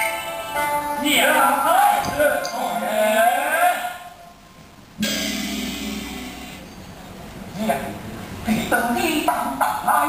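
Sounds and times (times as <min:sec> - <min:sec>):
struck percussion hit ringing: 0:05.0 - 0:06.8.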